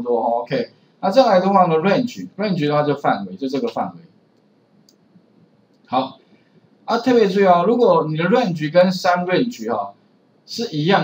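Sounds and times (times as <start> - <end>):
person speaking: 0.0 - 4.1, 5.9 - 6.2, 6.9 - 9.9, 10.5 - 11.0
computer mouse clicking: 4.3 - 5.9.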